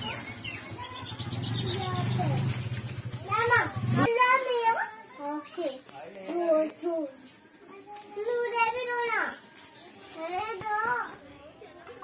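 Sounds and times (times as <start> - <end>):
children and women talking: 0.0 - 12.0.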